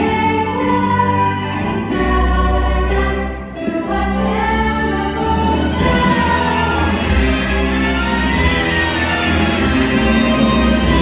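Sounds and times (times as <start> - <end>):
girls singing together: 0.0 - 7.2.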